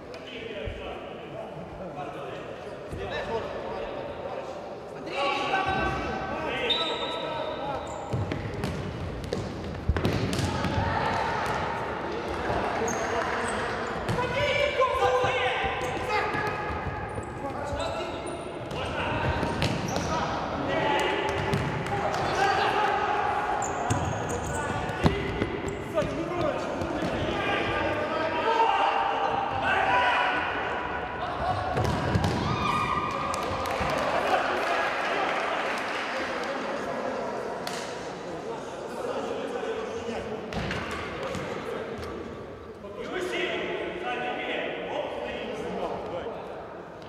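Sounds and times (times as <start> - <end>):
players shouting in gymnasium: 9.9 - 35.8.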